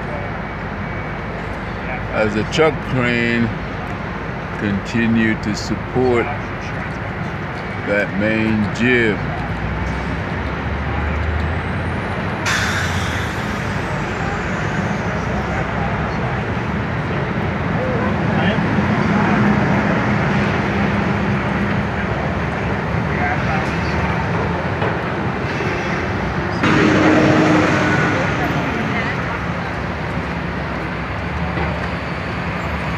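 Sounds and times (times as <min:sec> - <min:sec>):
street traffic roar: 0:00.0 - 0:32.9
vehicle passing close: 0:25.9 - 0:31.0.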